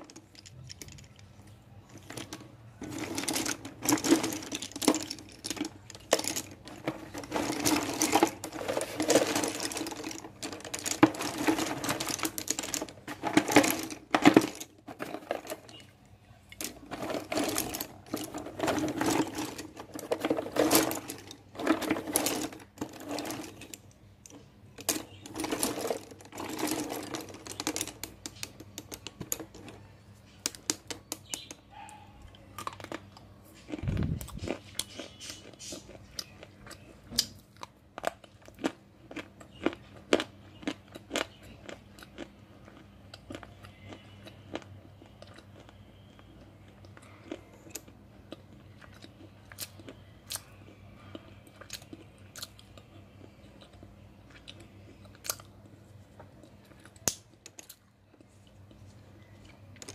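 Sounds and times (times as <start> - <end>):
slate pencils clattering in a box: 0.0 - 1.3, 1.9 - 29.8.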